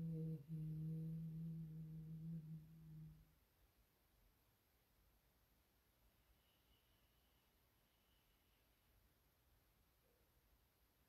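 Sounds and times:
person chanting a long tone: 0:00.0 - 0:03.2.

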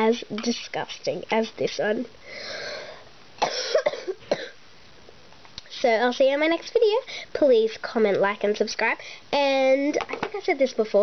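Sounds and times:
person breathing: 0:02.2 - 0:03.1, 0:07.1 - 0:07.4, 0:09.0 - 0:09.4
person coughing: 0:03.4 - 0:04.6.

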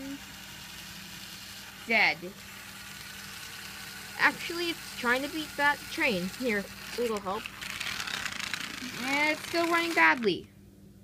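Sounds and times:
toy train motor humming: 0:00.0 - 0:10.5.

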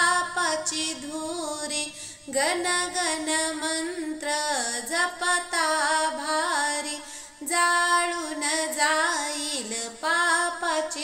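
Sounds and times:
woman singing devotional song: 0:00.0 - 0:11.0.

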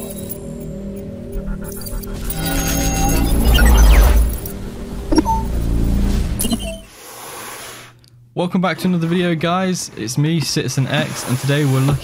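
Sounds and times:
low steady drone: 0:00.0 - 0:06.5
short electronic beep: 0:01.7 - 0:04.5, 0:05.1 - 0:05.6
glitchy electronic hit: 0:01.7 - 0:06.8.

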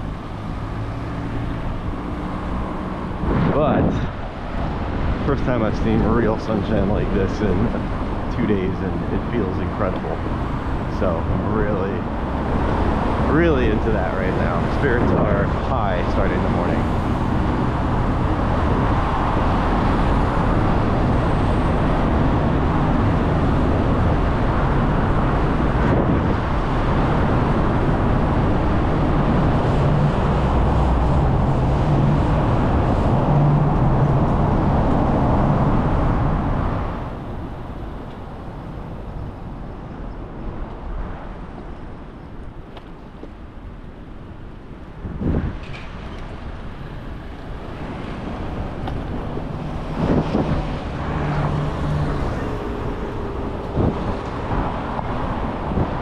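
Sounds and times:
passing road traffic: 0:00.0 - 0:56.0
wind rushing on microphone: 0:00.0 - 0:56.0.

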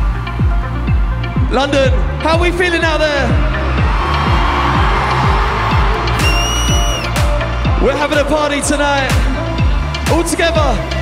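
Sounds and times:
electronic dance music: 0:00.0 - 0:11.0
kick drum: 0:03.4 - 0:07.8.

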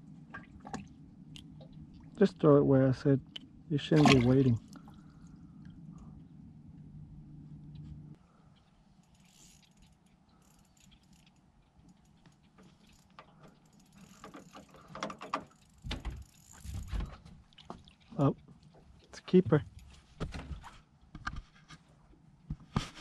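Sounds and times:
low steady hum: 0:00.0 - 0:23.0
fishing reel gears clicking: 0:09.0 - 0:16.8.

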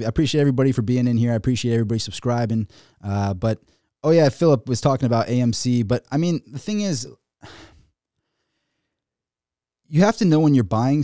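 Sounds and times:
man speaking: 0:00.0 - 0:07.2, 0:09.9 - 0:11.0
breath into microphone: 0:02.7 - 0:03.0, 0:07.4 - 0:09.0.

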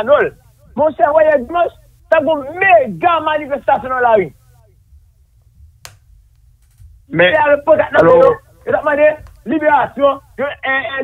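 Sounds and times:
steady low hum: 0:00.0 - 0:11.0
faint ticks: 0:05.8 - 0:06.9
sharp click: 0:06.6 - 0:06.9.

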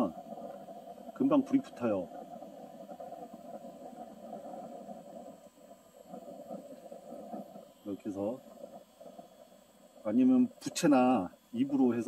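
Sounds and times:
handheld fan whirring: 0:00.0 - 0:12.0.

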